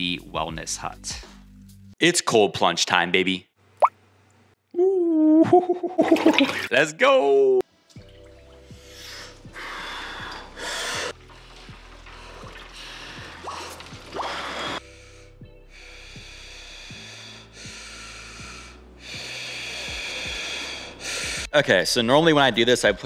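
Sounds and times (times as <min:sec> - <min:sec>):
man gasping and breathing heavily: 0:14.8 - 0:21.5.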